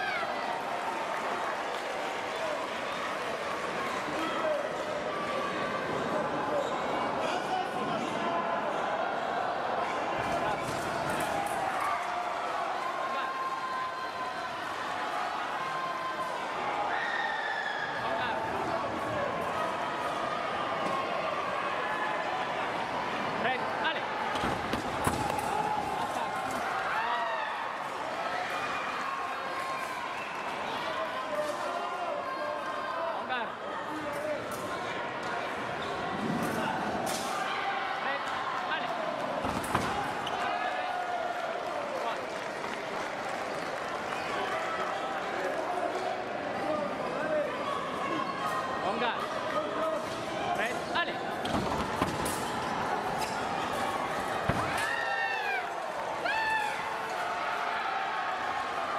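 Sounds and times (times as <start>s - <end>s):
crowd chatter: 0.0s - 58.9s.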